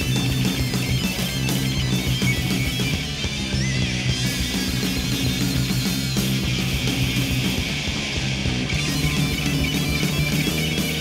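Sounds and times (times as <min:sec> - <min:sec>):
drums: 0:00.0 - 0:11.0
electric guitars: 0:00.0 - 0:11.0.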